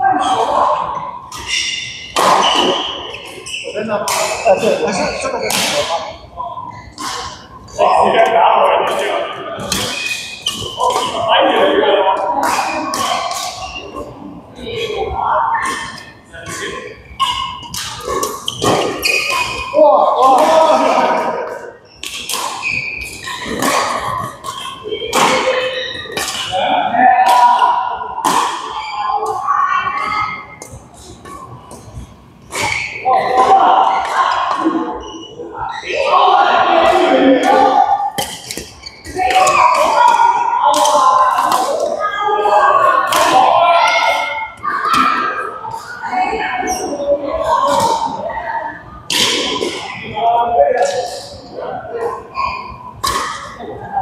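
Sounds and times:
people talking: 0.0s - 54.0s
rackets striking shuttlecock: 4.1s - 4.6s, 5.4s - 6.2s, 7.0s - 7.5s, 12.3s - 13.8s, 15.6s - 19.7s, 22.0s - 26.6s, 37.0s - 42.0s, 53.0s - 53.6s.

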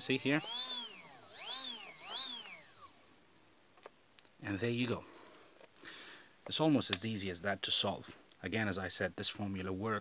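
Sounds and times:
small motor whining: 0.0s - 3.0s.

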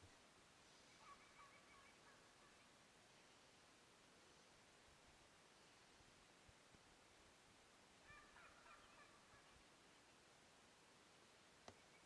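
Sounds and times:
distant turkey gobble: 0.8s - 2.8s, 8.0s - 9.6s.

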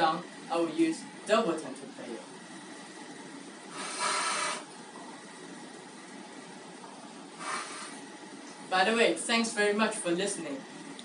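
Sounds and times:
faint room hiss: 0.0s - 11.0s
short rushes of breath: 3.7s - 4.7s.

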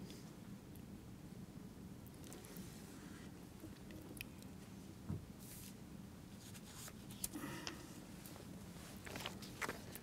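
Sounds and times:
soft rustles from handling: 8.2s - 10.0s.

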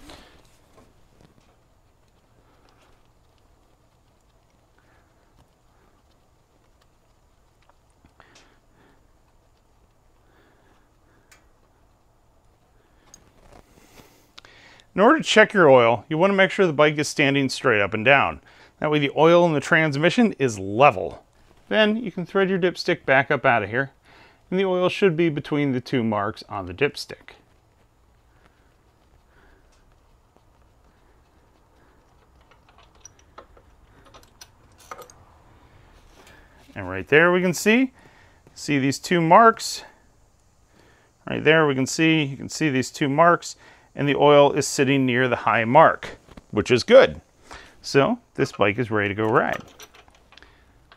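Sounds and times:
soft rustle: 0.0s - 50.9s
small clicks: 0.1s - 14.9s, 27.2s - 36.7s, 47.4s - 50.9s
hand-handling noise: 30.4s - 37.1s, 46.2s - 50.9s.

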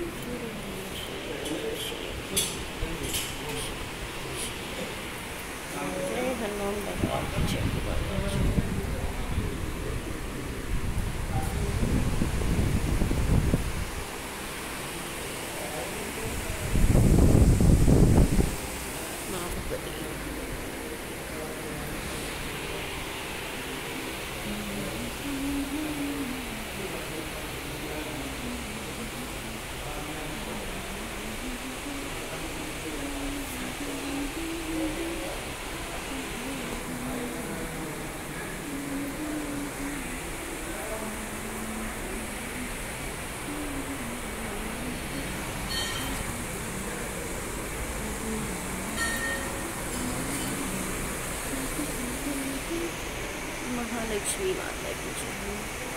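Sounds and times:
devotional singing: 0.0s - 55.9s.

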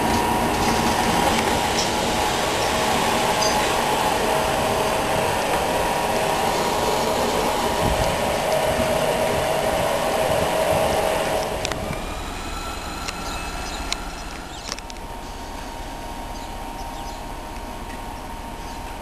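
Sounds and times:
steady tone: 0.0s - 18.6s
train wheels on rails: 0.0s - 19.0s.

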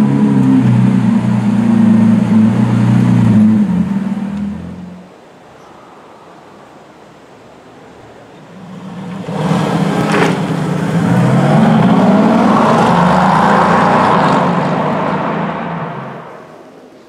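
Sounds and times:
sports car driving past: 8.5s - 16.6s.

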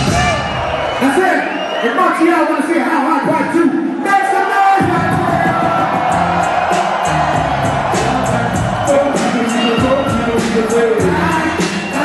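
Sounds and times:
crowd cheering and singing along: 0.0s - 12.0s
hip-hop beat with heavy bass: 4.8s - 12.0s.

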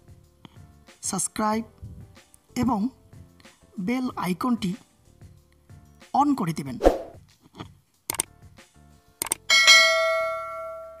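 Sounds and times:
mouse clicks: 8.1s - 8.3s, 9.2s - 9.4s.

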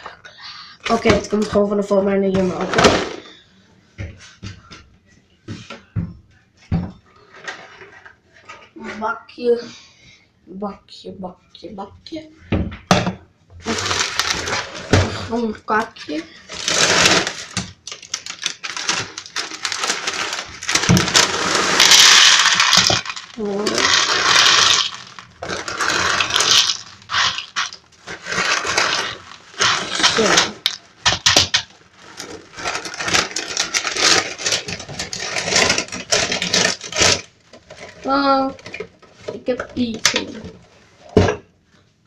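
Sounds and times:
plastic bag crinkling: 13.6s - 15.0s, 16.4s - 38.8s.

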